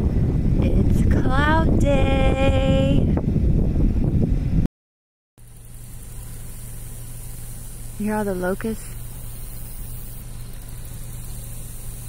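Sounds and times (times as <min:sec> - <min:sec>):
low steady hum: 0:00.0 - 0:04.7, 0:05.4 - 0:12.0
wind and road noise: 0:00.0 - 0:04.7, 0:05.4 - 0:12.0
cicadas singing: 0:05.4 - 0:12.0.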